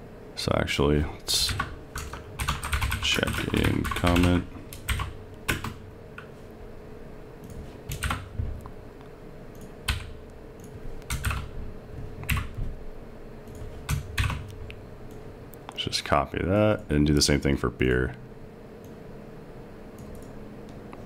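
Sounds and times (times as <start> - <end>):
faint steady hum: 0.0 - 21.0
keyboard keystrokes: 7.4 - 8.3, 9.6 - 11.5, 12.2 - 12.6.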